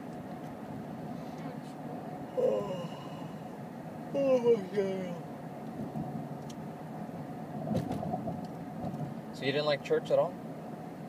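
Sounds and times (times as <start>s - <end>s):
moving vehicle hum: 0.0s - 11.0s
faint steady tone: 1.0s - 7.5s.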